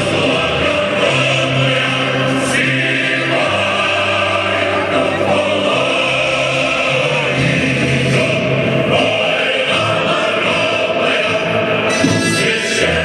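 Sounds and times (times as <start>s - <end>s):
choir singing long notes: 0.0s - 13.0s.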